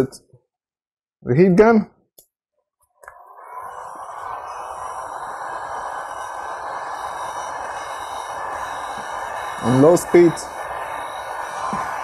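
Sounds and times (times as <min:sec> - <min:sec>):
heat gun fan blowing: 0:03.0 - 0:12.0.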